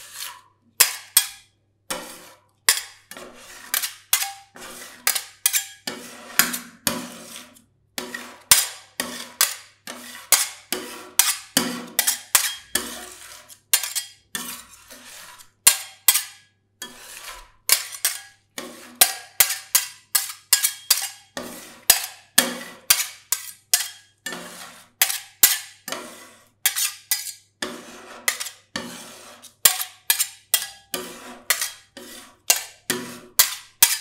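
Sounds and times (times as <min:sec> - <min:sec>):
blade scraping through mix: 0:00.0 - 0:15.9, 0:16.8 - 0:34.0
metal spatulas tapping steel plate: 0:00.8 - 0:02.1, 0:02.7 - 0:07.1, 0:08.0 - 0:13.2, 0:13.8 - 0:14.6, 0:15.7 - 0:17.0, 0:17.7 - 0:26.1, 0:26.7 - 0:28.9, 0:29.6 - 0:34.0.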